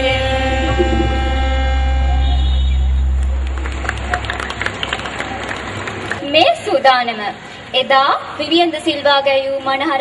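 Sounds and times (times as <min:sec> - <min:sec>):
low steady drone: 0:00.1 - 0:03.6
choir holding a chord: 0:00.4 - 0:02.1.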